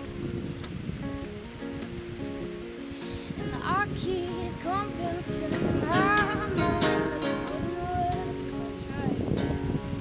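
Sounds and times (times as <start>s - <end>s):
acoustic guitar: 0.0s - 10.0s.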